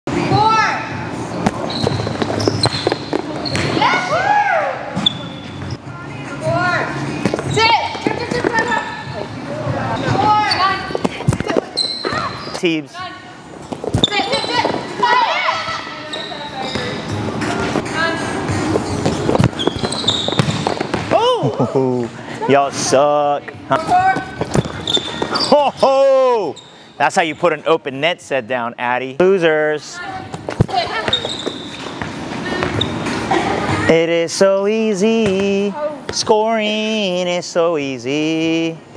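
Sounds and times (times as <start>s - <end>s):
ball hitting the floor: 1.4s - 3.8s, 18.8s - 21.6s, 23.8s - 25.5s, 30.3s - 32.9s
volleyball hits on gym floor: 19.0s - 21.3s
players calling out: 23.7s - 26.9s.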